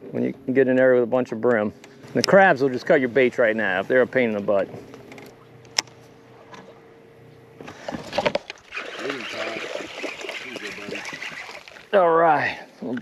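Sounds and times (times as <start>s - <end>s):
faint steady hum: 0.0s - 13.0s
fish splashing at water surface: 7.7s - 12.0s.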